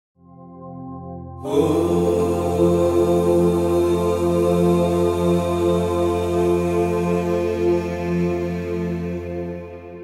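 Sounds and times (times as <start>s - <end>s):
steady low drone: 1.2s - 10.0s
mantra chanting: 1.4s - 9.6s.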